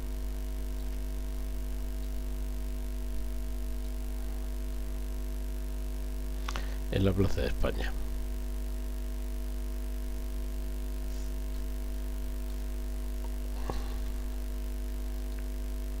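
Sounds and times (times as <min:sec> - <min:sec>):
electrical mains hum: 0:00.0 - 0:16.0.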